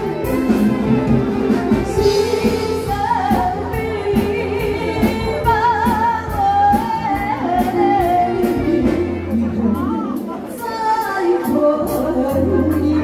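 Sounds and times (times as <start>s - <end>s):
steady drum beat: 0.0s - 10.7s
amplified instrumental accompaniment: 0.0s - 13.0s
woman singing pop ballad: 1.7s - 13.0s.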